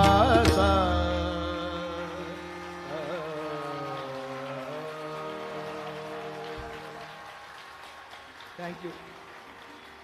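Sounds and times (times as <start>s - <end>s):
classical singing voice: 0.0s - 7.3s
harmonium: 0.0s - 7.4s
faint scattered applause: 0.0s - 10.0s
tanpura drone: 1.6s - 7.5s.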